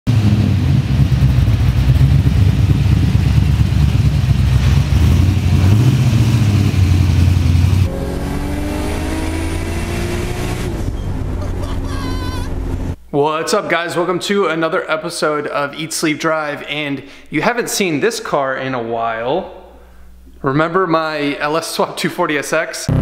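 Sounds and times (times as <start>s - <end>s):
engine deep rumble: 0.1s - 13.0s
quieter rising tone: 2.3s - 13.2s.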